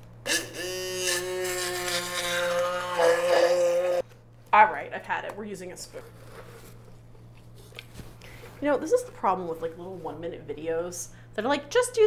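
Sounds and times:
immersion blender whining: 0.3s - 4.0s.

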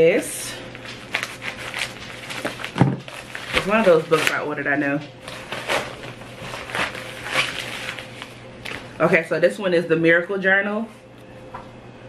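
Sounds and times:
packaging rustling and crinkling: 0.7s - 8.9s.

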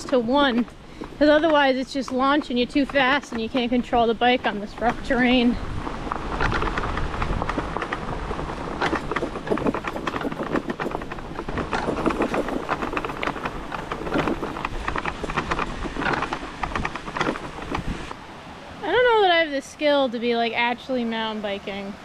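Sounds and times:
bike rattling over bumps: 0.0s - 18.2s
tyre noise on trail: 0.0s - 19.4s.

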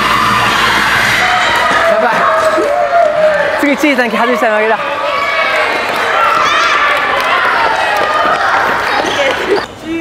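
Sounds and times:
children cheering and shouting: 0.0s - 9.7s.

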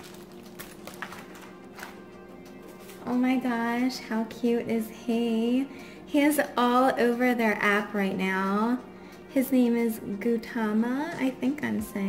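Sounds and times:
rustling of bubble mailer: 0.0s - 2.0s
quiet background music: 0.0s - 12.0s.

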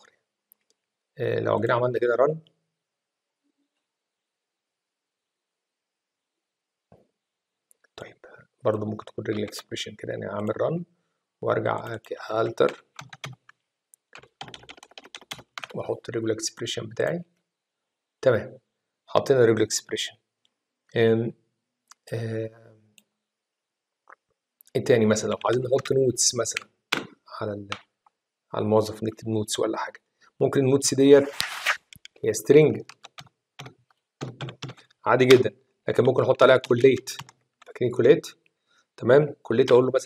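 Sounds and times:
computer keyboard typing: 11.8s - 15.8s, 25.2s - 27.1s, 32.8s - 35.5s, 36.6s - 37.8s.

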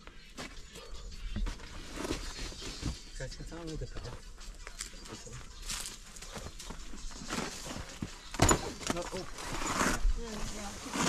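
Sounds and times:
shoes and hands scuffing on rock: 4.0s - 11.0s.

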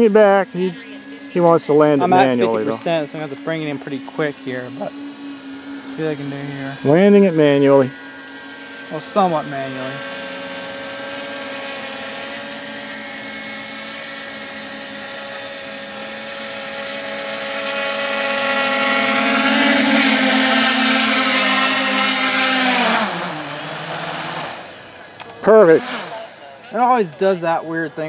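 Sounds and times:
drone motors whining: 0.0s - 28.0s.

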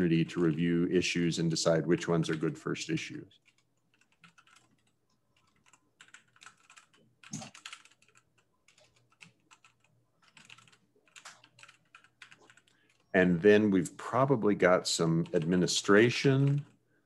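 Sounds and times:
faint keyboard typing: 0.0s - 0.9s, 1.7s - 2.7s, 3.3s - 13.2s, 15.0s - 16.8s.

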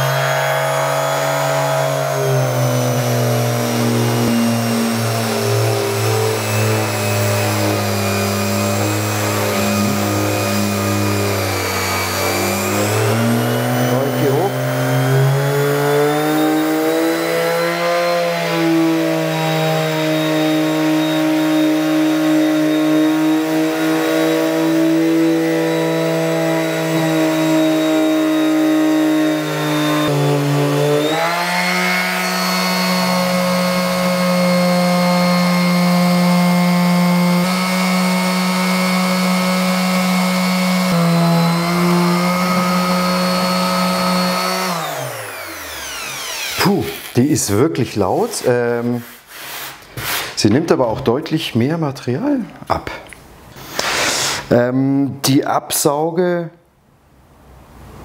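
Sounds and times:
electric sander buzzing: 0.0s - 51.2s.

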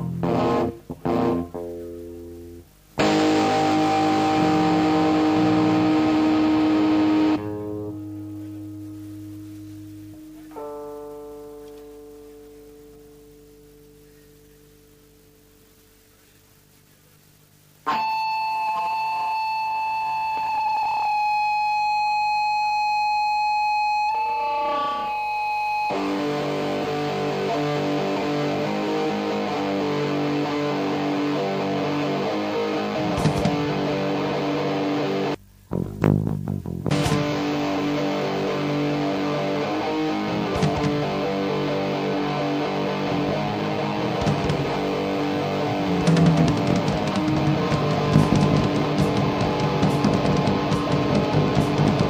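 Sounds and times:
bass guitar: 0.0s - 13.4s, 25.9s - 52.0s
sustained high guitar tone: 0.0s - 15.5s, 17.8s - 52.0s
distorted electric guitar: 0.0s - 16.7s, 17.3s - 52.0s
full band playing: 46.0s - 52.0s.

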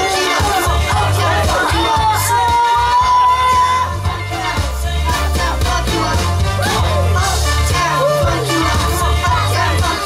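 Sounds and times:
pop backing track over speakers: 0.0s - 10.0s.

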